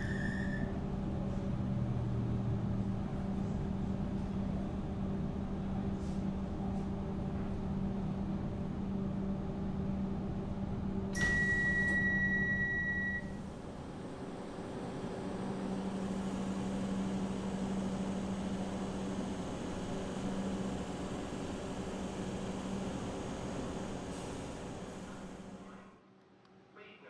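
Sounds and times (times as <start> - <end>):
electric train humming: 11.1 - 25.6.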